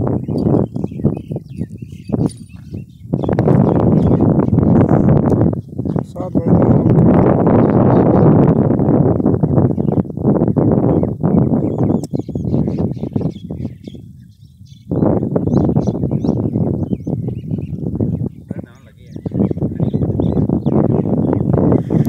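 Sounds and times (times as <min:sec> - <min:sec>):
small birds chirping: 0:00.0 - 0:08.3, 0:09.0 - 0:22.0
wind buffeting microphone: 0:00.0 - 0:22.0.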